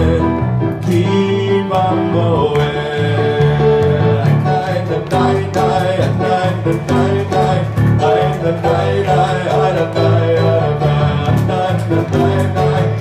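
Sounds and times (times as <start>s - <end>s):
digital piano chords: 0.0s - 13.0s
man singing: 0.0s - 13.0s.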